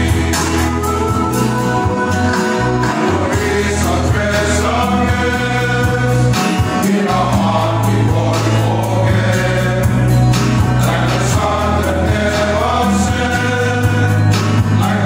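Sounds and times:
men's choir singing a hymn: 0.0s - 15.0s
strummed acoustic guitars: 0.0s - 15.0s.

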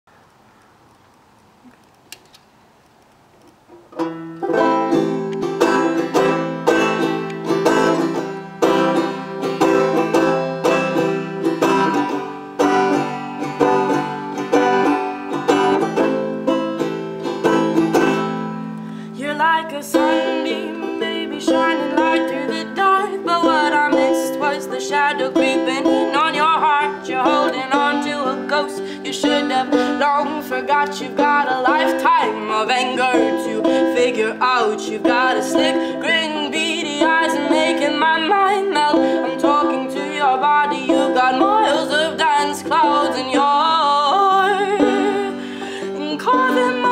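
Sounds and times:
banjo picking folk tune: 3.7s - 46.9s
higher wavering melody: 4.0s - 46.9s.

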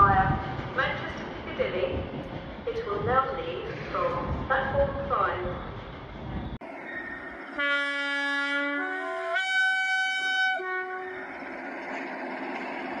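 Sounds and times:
steady rail noise: 0.0s - 13.0s
train horn: 7.6s - 11.4s.

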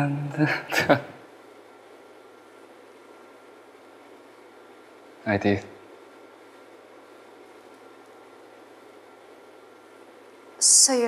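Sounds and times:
faint steady hum: 0.0s - 11.0s
room tone hiss: 0.0s - 11.0s.

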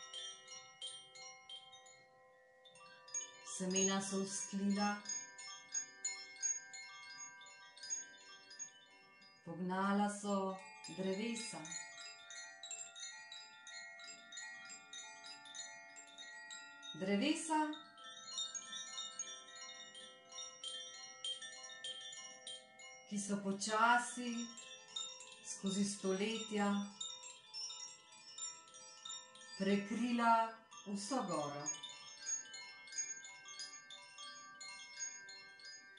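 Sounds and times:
wooden wind chimes ringing: 0.0s - 35.9s.

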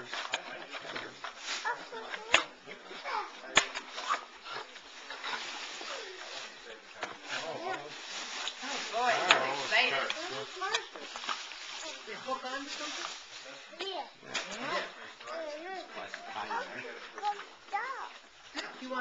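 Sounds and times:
chatter of adults and children: 0.0s - 19.0s.

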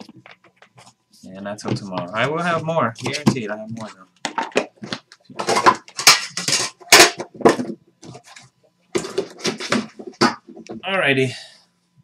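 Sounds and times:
trading cards rustling and clattering: 1.7s - 10.7s.

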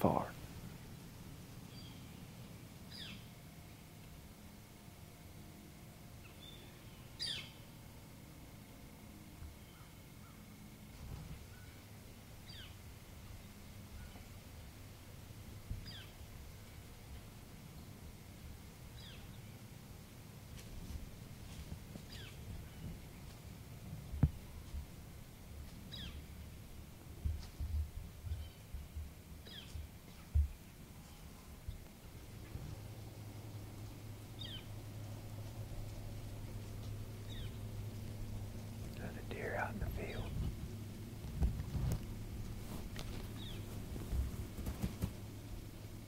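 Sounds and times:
soft whisper: 0.0s - 0.4s, 38.9s - 40.6s
quiet woods ambience: 0.0s - 46.0s
sharp low bumps: 35.5s - 45.6s.

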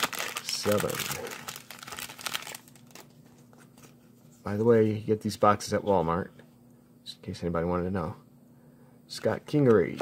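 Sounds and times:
foil wrapper crinkling: 0.0s - 3.9s.

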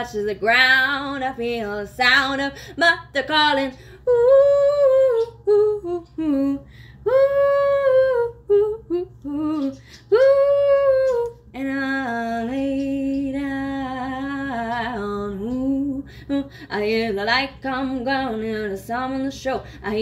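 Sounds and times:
woman singing a cappella: 0.0s - 20.0s.

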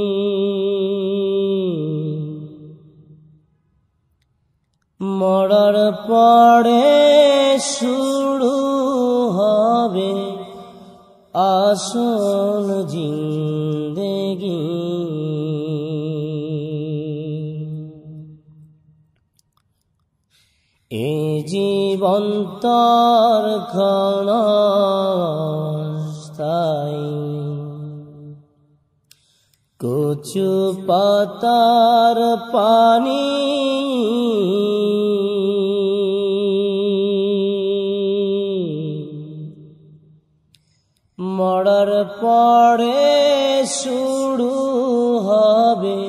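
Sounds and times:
solo voice singing: 5.0s - 18.5s, 20.9s - 28.4s, 29.8s - 40.0s, 41.2s - 46.0s.

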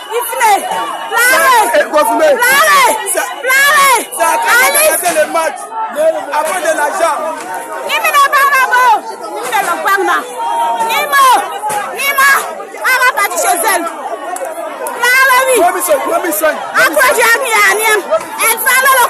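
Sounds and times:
crowd shouting and talking: 0.0s - 19.0s.

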